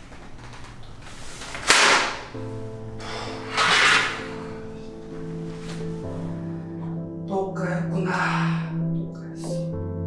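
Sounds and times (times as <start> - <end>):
music with sustained notes: 1.1 - 10.0.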